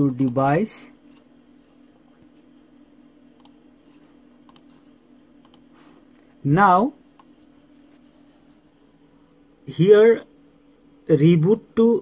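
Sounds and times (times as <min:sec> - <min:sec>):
steady low hum: 0:00.0 - 0:12.0
computer mouse clicks: 0:03.4 - 0:03.6, 0:04.4 - 0:04.8, 0:05.4 - 0:05.7.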